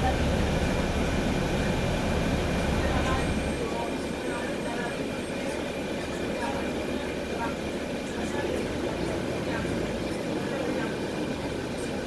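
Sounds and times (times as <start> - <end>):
bus diesel engine and road rumble: 0.0 - 12.0.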